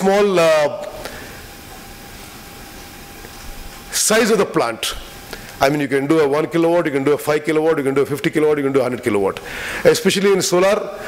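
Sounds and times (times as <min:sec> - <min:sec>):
faint steady hum: 0:00.0 - 0:11.0
room noise hiss: 0:00.0 - 0:11.0.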